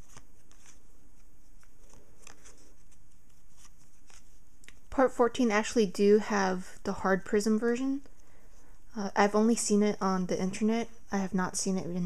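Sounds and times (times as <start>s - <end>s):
trading cards clicking and rustling: 0.0s - 4.9s.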